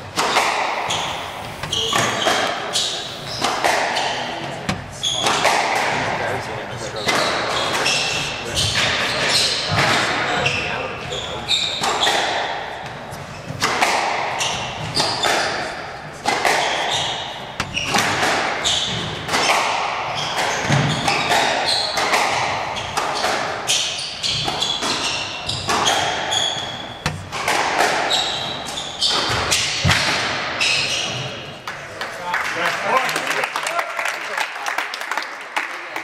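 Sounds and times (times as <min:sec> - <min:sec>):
sneakers squeaking on hardwood: 0:00.0 - 0:06.1, 0:06.9 - 0:15.7, 0:16.4 - 0:31.5
shoes squeaking on hardwood: 0:00.2 - 0:05.6, 0:22.7 - 0:29.6
squash ball smacking walls: 0:13.5 - 0:28.4, 0:29.1 - 0:30.6
squash ball struck: 0:24.3 - 0:28.1, 0:29.1 - 0:30.6.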